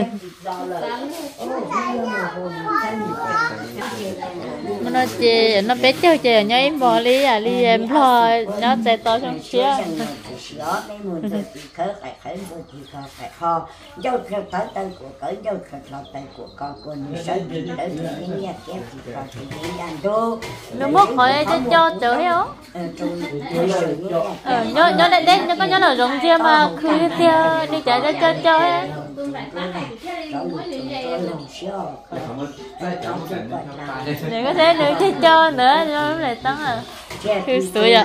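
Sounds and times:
people talking: 0.0s - 38.0s
people's voices: 0.0s - 38.0s
child's voice: 1.6s - 3.7s.

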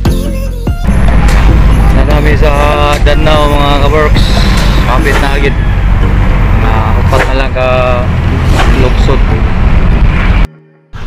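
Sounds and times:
bus engine and road rumble: 0.4s - 11.0s.

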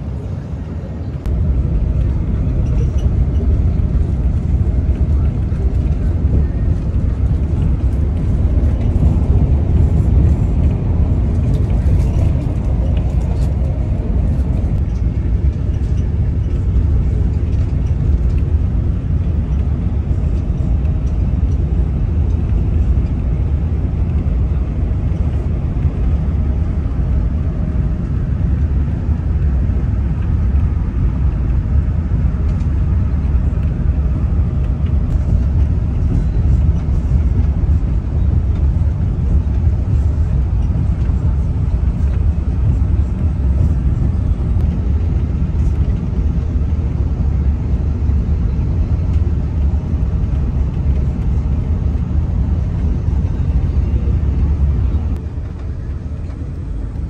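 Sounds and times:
road and engine rumble: 0.0s - 57.0s.

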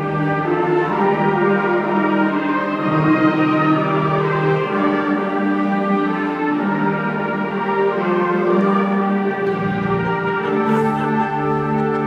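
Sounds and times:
concert band playing sustained chords: 0.0s - 12.0s.

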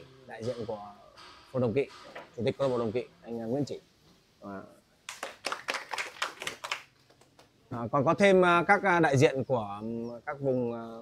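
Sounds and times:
people clapping: 5.1s - 7.6s.

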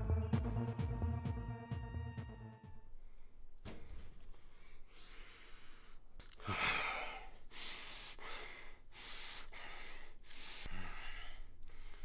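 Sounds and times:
man breathing heavily: 4.4s - 12.0s.

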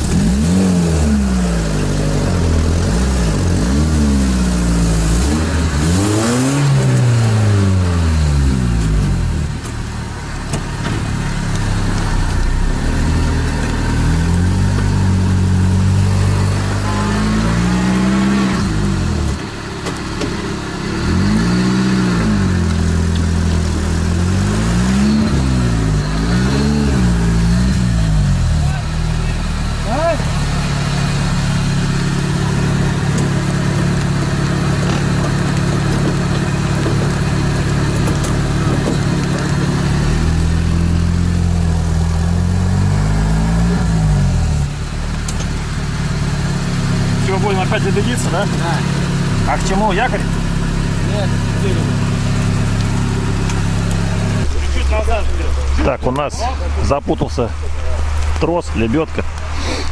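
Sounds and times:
engine revving: 0.0s - 59.9s.

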